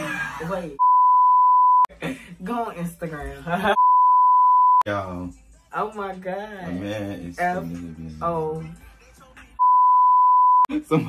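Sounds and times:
high-pitched censor bleep: 0.8 - 1.9, 3.8 - 4.8, 9.6 - 10.7.

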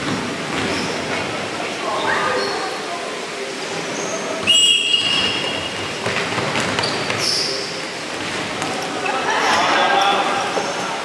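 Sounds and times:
referee's whistle blast: 4.4 - 5.5.

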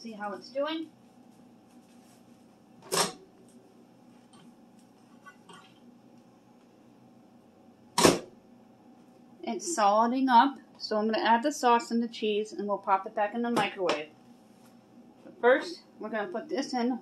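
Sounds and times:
faint steady hum: 0.0 - 17.0
microwave door shutting clunk: 8.0 - 8.3.

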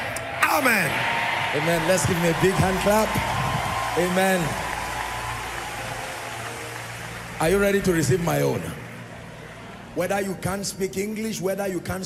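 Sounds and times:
crowd applauding in a hall: 0.0 - 10.6.

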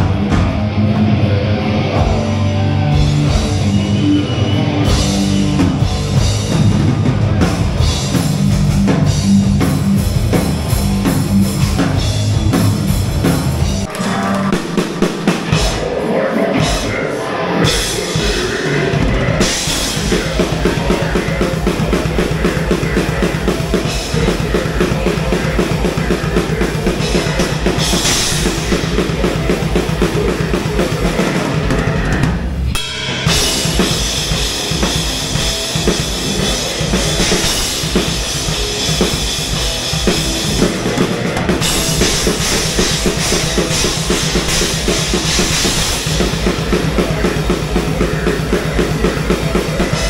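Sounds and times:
metal band playing live: 0.0 - 50.0
fast bass drum strokes: 4.7 - 17.0, 17.6 - 50.0.

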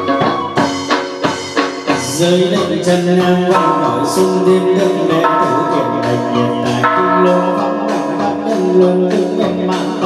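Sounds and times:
ringing metal percussion strikes: 0.0 - 10.0
sustained pitched notes: 0.0 - 10.0.

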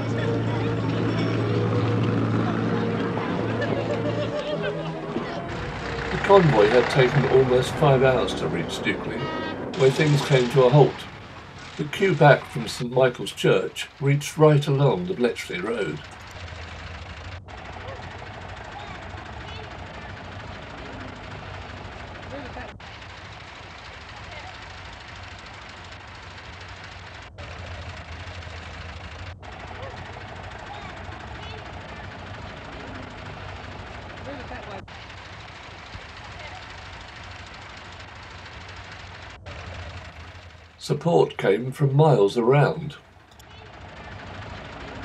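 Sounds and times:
indistinct crowd voices: 0.0 - 16.8, 17.4 - 25.7, 29.4 - 38.8
tractor engines droning: 0.0 - 45.0.

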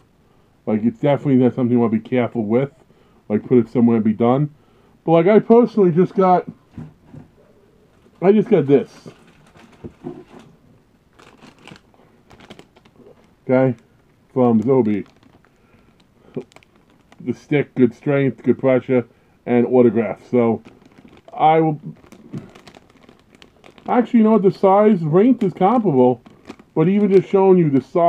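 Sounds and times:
person talking: 0.7 - 6.6, 8.2 - 9.2, 13.4 - 15.1, 17.2 - 20.6, 21.3 - 22.0, 23.8 - 26.2, 26.8 - 28.0
plastic bag crinkling: 7.9 - 10.5, 11.1 - 28.0.

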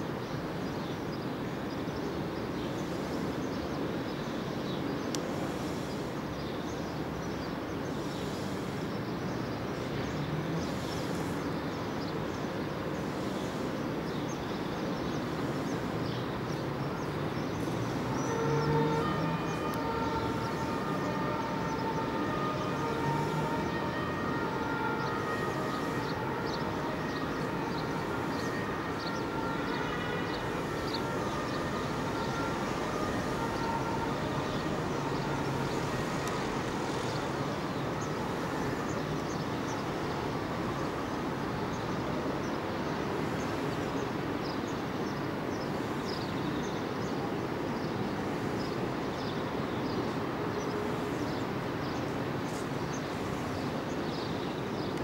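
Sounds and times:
distant traffic rumble: 1.4 - 55.0.

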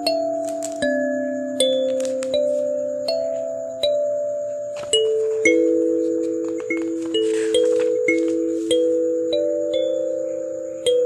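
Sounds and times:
kalimba melody: 0.0 - 11.0.

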